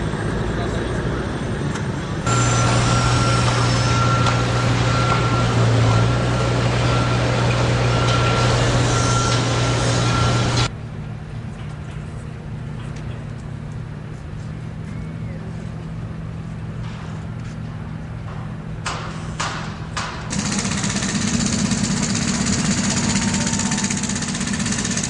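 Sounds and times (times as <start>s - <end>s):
vehicle engine humming: 0.0s - 25.0s
high-pitched warning beeper: 2.3s - 10.7s.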